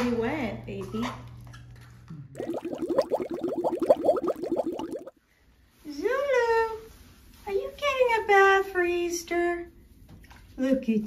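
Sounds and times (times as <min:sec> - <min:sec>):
cartoon bubbling bloops: 0:02.4 - 0:05.1.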